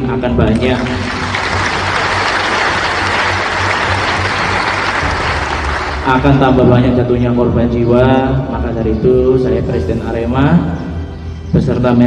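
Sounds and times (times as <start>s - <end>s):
audience applauding: 0.5s - 6.6s.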